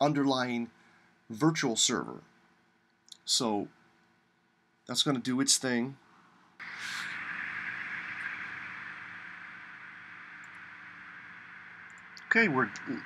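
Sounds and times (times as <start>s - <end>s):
faint low hum: 0.0s - 13.0s
steady rushing air noise: 6.6s - 13.0s.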